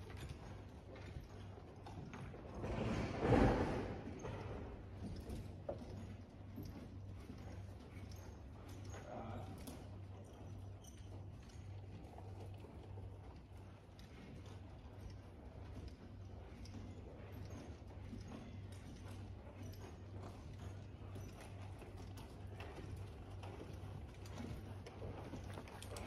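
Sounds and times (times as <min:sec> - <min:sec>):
horse hoofbeats on dirt: 0:00.0 - 0:26.0.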